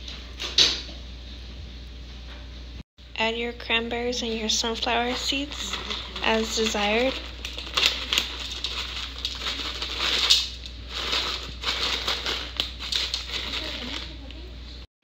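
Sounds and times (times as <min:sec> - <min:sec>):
plastic pouch crinkling: 0:04.7 - 0:14.3.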